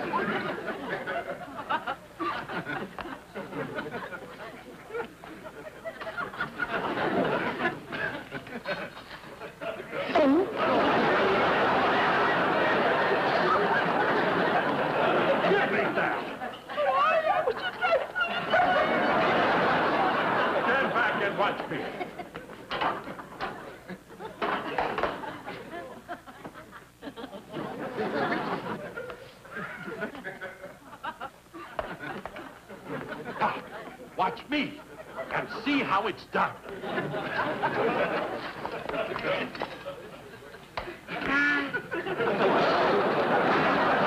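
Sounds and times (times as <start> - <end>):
audience laughing: 0.0 - 35.9, 36.5 - 44.0.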